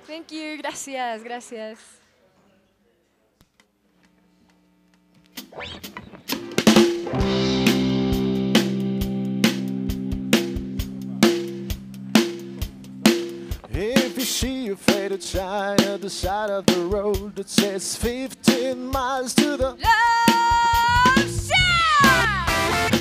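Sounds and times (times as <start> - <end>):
electric guitar chord: 5.6 - 15.8
drum hits: 5.9 - 23.0
person singing: 13.6 - 22.7.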